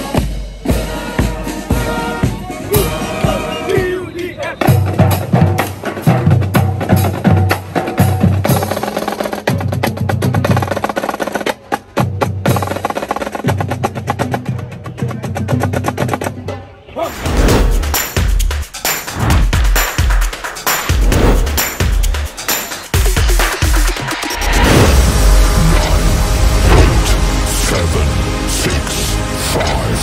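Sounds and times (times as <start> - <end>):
low drums beating: 0.0 - 4.0, 17.2 - 29.0
snare drums playing rolls: 17.6 - 24.4.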